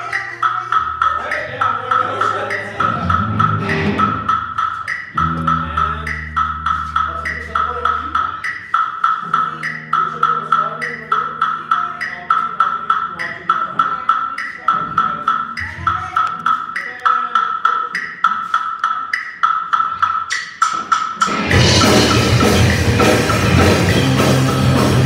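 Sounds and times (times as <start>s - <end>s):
held bass guitar notes: 0.0s - 8.5s, 9.1s - 17.1s, 21.2s - 25.0s
rock band playing loudly: 0.0s - 13.8s, 20.5s - 25.0s.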